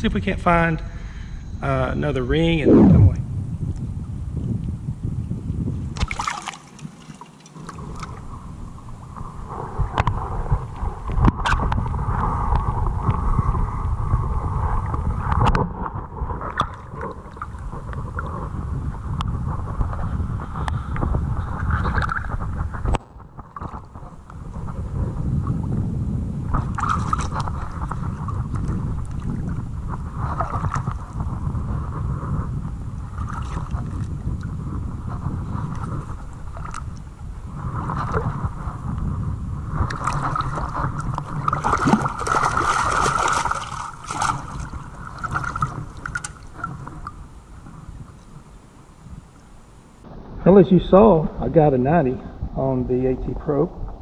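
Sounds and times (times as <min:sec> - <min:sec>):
wind buffeting microphone: 0:00.0 - 0:07.0, 0:07.6 - 0:54.0
water sloshing around legs: 0:06.0 - 0:08.3, 0:39.9 - 0:47.0.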